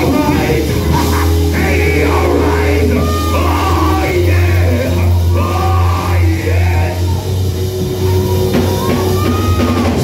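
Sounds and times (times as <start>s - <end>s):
person singing loudly: 0.0s - 7.4s
gospel band playing: 0.0s - 10.0s.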